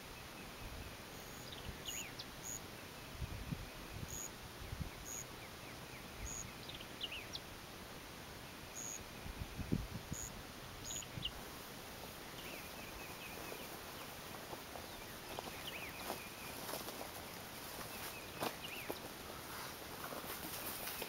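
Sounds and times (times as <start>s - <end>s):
small birds chirping: 0.0s - 7.6s, 8.4s - 21.0s
faint steady hiss: 0.0s - 21.0s
wind rumble on microphone: 3.1s - 5.0s, 9.2s - 11.4s.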